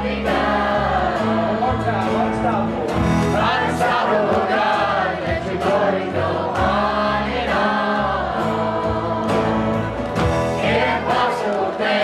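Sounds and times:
acoustic guitar: 0.0 - 12.0
people singing together: 0.0 - 12.0.

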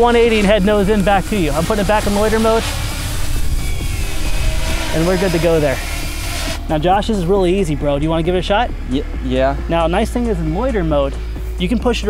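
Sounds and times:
quadcopter drone hovering: 0.0 - 12.0.

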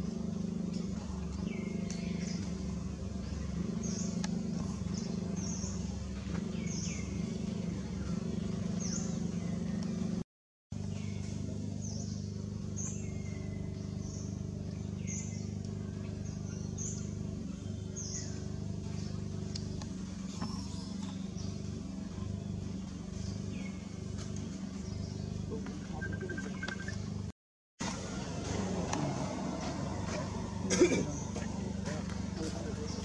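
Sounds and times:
birds chirping: 0.0 - 10.2, 10.8 - 27.3, 27.9 - 33.0
steady low hum: 0.0 - 33.0.

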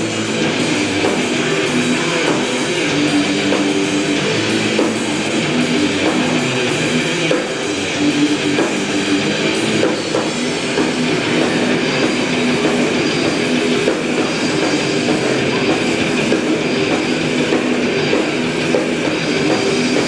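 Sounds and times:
metal band playing live: 0.0 - 20.0.

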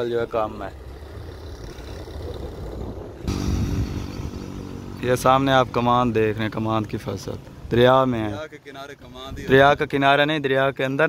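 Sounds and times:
vehicle engine humming: 0.0 - 9.4
low outdoor rumble: 0.0 - 10.0.

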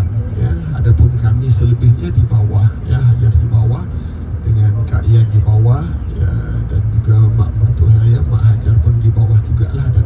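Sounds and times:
bus rumbling: 0.0 - 10.0
man speaking over speakers: 0.2 - 10.0.

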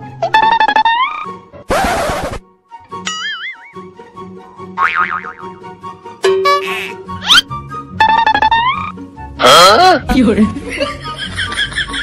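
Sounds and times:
wobbling boing: 4.8 - 5.5.

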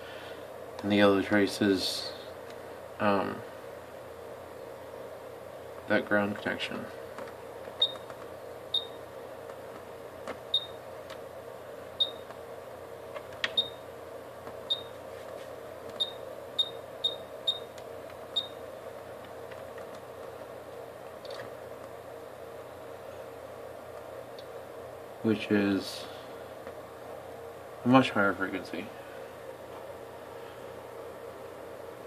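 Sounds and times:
steady background hum: 0.0 - 32.0.

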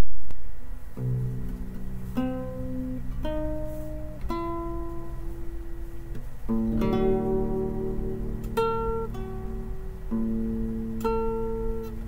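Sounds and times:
classical guitar played solo: 0.9 - 12.0.

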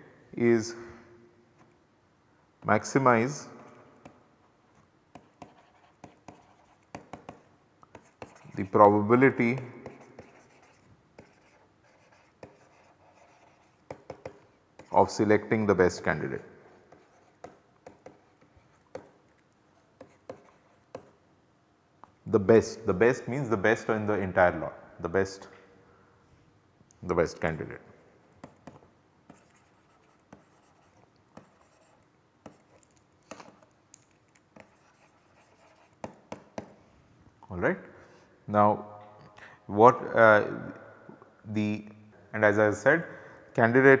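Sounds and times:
stylus tapping: 5.2 - 9.0, 13.9 - 15.0, 35.9 - 36.8
stylus scratching on tablet: 5.2 - 15.1, 16.7 - 19.1, 20.0 - 21.1, 28.4 - 36.7.

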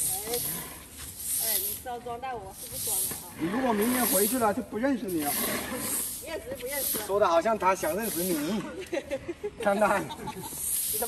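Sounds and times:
twig brooms swishing on grain: 0.0 - 8.6, 10.5 - 11.0
voices talking: 0.0 - 11.0.

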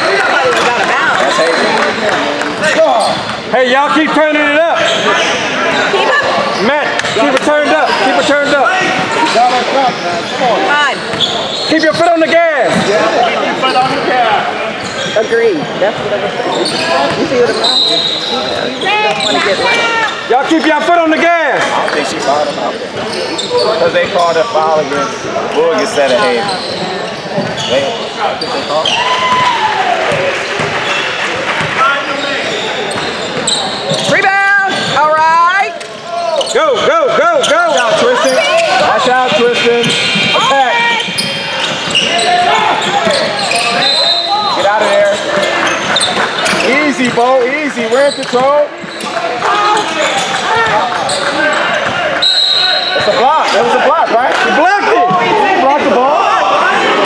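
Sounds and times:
calls echoing in a gym: 0.0 - 57.0
shoes squeaking on hardwood floor: 2.6 - 53.9.

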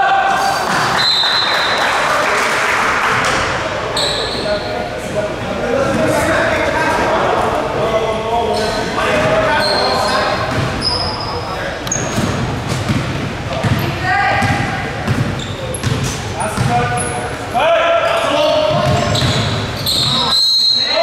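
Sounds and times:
sneaker squeaks: 4.0 - 4.7, 8.5 - 17.4, 18.1 - 21.0.

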